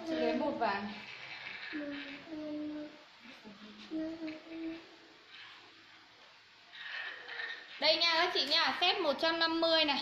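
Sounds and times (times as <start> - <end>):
faint room sound: 0.0 - 10.0.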